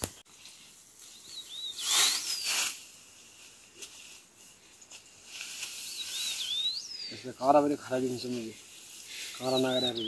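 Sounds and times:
leaves and stems rustling: 0.0 - 10.0
high thin bird whistle: 1.1 - 2.8, 5.7 - 7.2.

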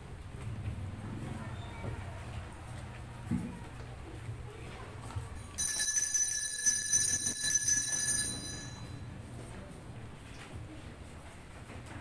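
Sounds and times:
bells ringing: 5.5 - 9.1.

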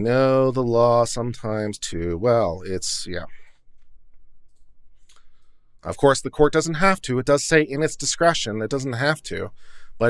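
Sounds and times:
man speaking: 0.0 - 3.5, 5.8 - 10.0
soft clicks: 3.5 - 5.4.

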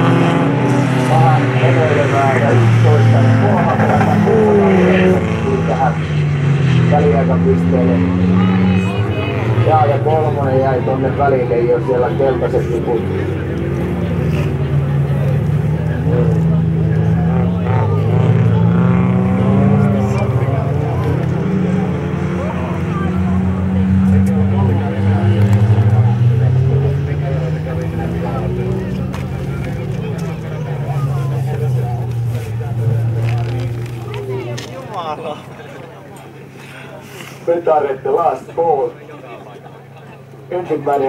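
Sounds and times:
racing car engines revving: 0.0 - 41.0.

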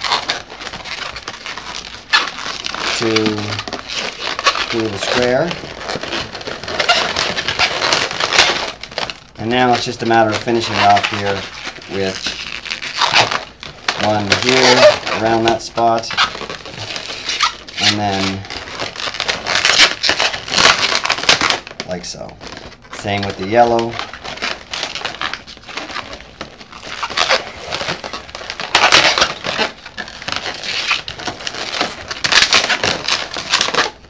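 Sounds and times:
balloons rubbing and crackling: 0.0 - 34.0.

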